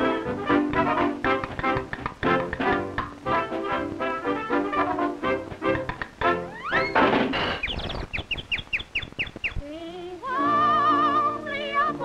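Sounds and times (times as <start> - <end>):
falling whistle-like chirps: 6.5 - 9.6.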